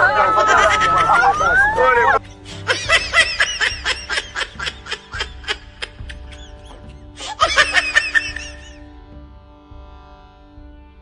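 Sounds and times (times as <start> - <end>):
rapid laughter: 0.0 - 8.9
background music with held notes: 0.0 - 11.0.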